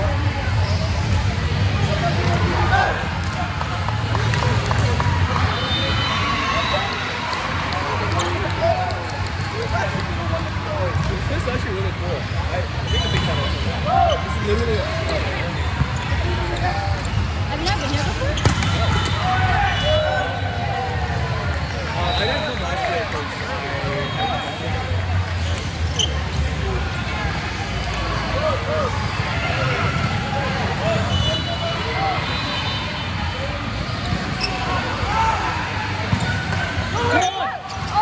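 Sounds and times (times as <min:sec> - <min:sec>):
voices and calls echoing: 0:00.0 - 0:38.0
balls bouncing: 0:01.8 - 0:05.7, 0:07.3 - 0:11.7, 0:14.4 - 0:19.3, 0:36.0 - 0:37.0
sneakers squeaking on court floor: 0:12.6 - 0:20.4, 0:25.4 - 0:26.6, 0:33.8 - 0:35.0, 0:36.0 - 0:38.0
volleyball being hit: 0:18.4 - 0:19.0.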